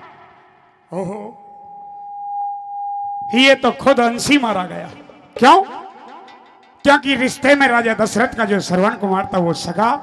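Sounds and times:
man exclaiming: 0:00.9 - 0:01.4
microphone feedback tone: 0:00.9 - 0:03.8, 0:08.8 - 0:10.0.

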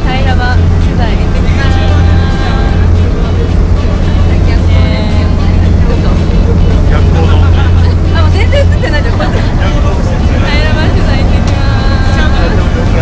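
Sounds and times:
boat engine low hum: 0:00.0 - 0:13.0
music: 0:00.0 - 0:13.0.

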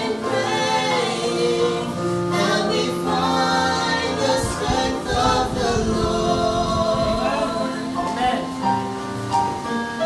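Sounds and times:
woman and man singing gospel: 0:00.0 - 0:08.6.

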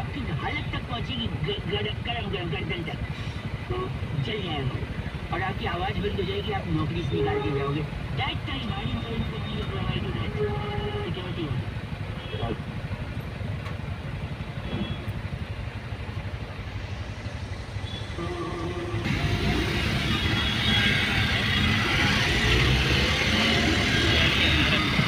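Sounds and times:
car engine and road noise: 0:00.0 - 0:25.0.

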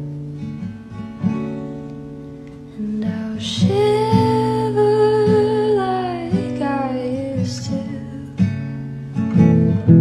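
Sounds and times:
acoustic guitar strummed: 0:00.0 - 0:10.0
woman singing: 0:02.7 - 0:08.7.

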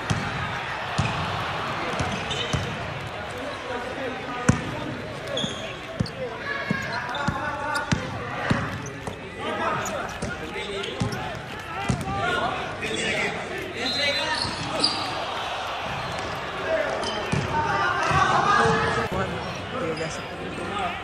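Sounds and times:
players calling out: 0:00.0 - 0:21.0.

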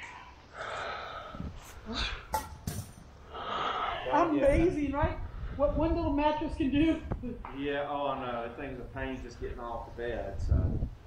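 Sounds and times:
person breathing hard: 0:00.0 - 0:02.4, 0:03.2 - 0:04.1.

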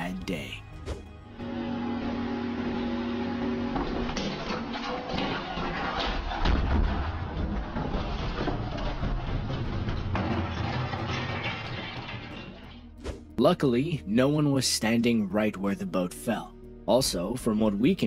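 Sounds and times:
background music: 0:00.0 - 0:03.1, 0:09.1 - 0:18.0
boat crashing onto deck: 0:03.8 - 0:12.8.

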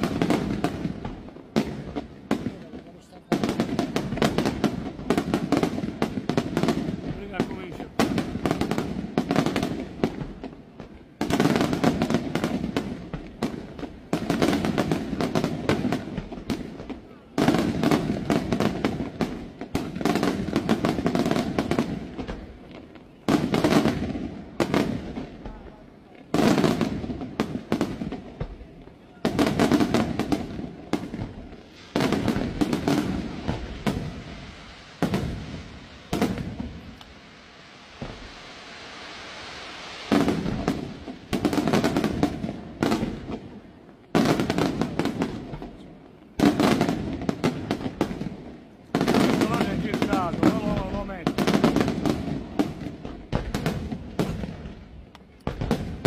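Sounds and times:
firework crackle: 0:00.0 - 0:56.0
steady hiss: 0:00.0 - 0:56.0
firework shells bursting: 0:29.3 - 0:43.6, 0:49.0 - 0:56.0.

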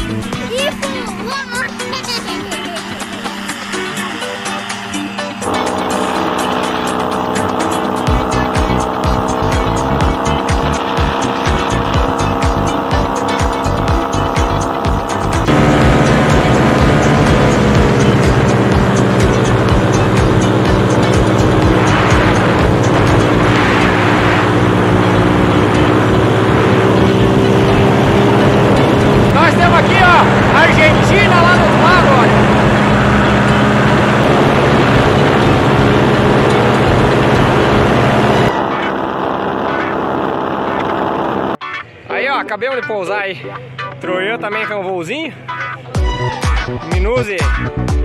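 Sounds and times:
paramotor engine and propeller: 0:00.0 - 0:42.2.

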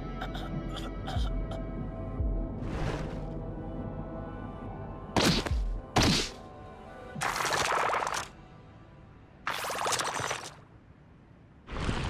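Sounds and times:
background music: 0:00.0 - 0:10.2.

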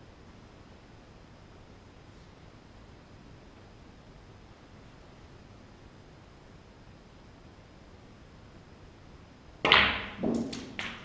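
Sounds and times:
snooker balls clicking: 0:09.6 - 0:11.0.

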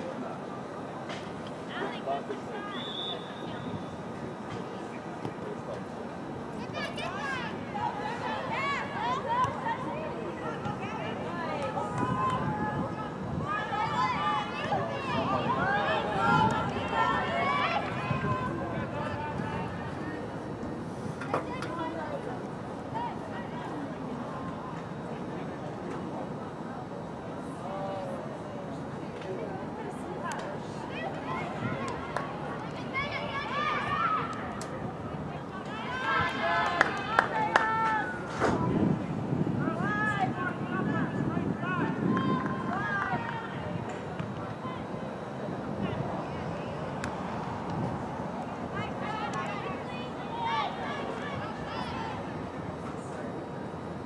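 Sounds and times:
open-air soccer game noise: 0:00.0 - 0:54.0
voices talking and calling out: 0:00.0 - 0:54.0.

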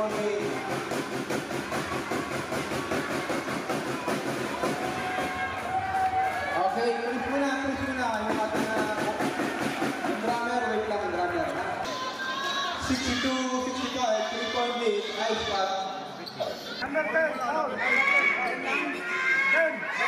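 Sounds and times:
spectators talking and calling out: 0:00.0 - 0:20.0.

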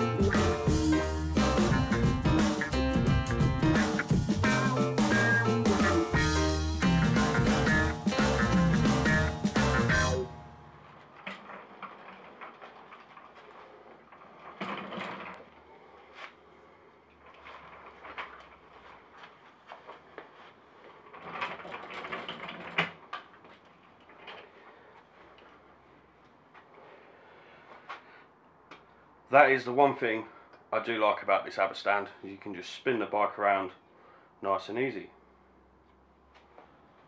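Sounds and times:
metal frame clicking and rattling: 0:10.8 - 0:15.5, 0:17.1 - 0:20.0, 0:20.8 - 0:24.6.

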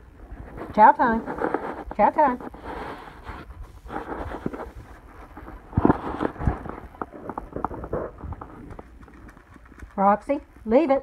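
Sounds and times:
handling rustle: 0:00.4 - 0:10.6
thumps and clatter: 0:05.3 - 0:10.0.

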